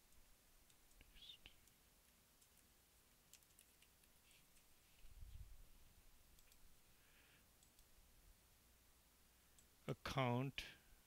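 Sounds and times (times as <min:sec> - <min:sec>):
faint mouse clicks: 0:00.0 - 0:05.1, 0:06.3 - 0:06.7, 0:07.4 - 0:08.0, 0:09.5 - 0:09.8.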